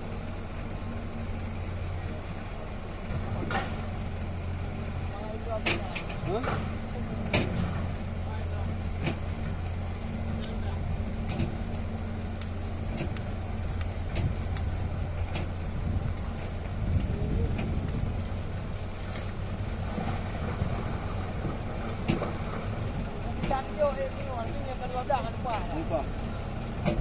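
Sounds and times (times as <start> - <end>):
diesel engine droning: 0.0 - 27.0.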